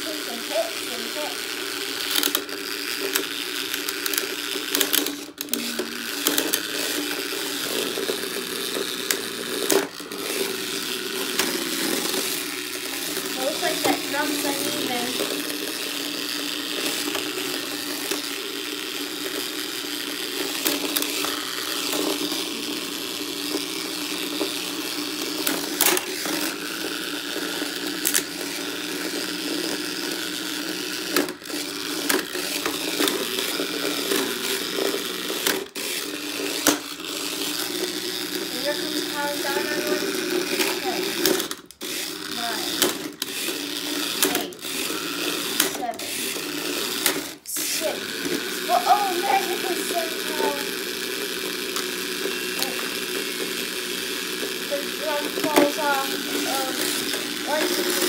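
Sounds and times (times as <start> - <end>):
toy robot motors whirring: 0.0 - 58.0.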